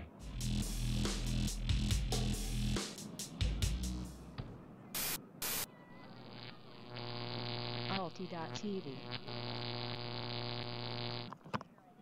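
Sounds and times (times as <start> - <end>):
white noise static hiss: 0.0 - 11.4
electrical buzz: 5.0 - 11.4.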